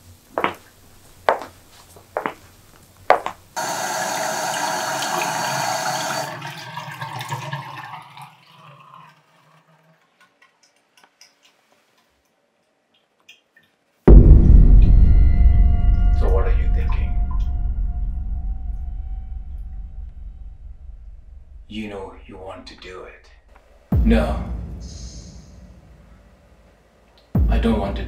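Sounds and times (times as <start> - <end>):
toilet flushing: 3.6 - 10.5
low dark music: 14.1 - 28.0.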